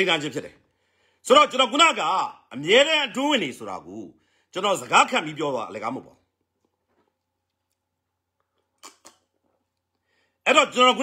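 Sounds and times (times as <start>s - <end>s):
man sipping and swallowing: 6.4s - 10.2s.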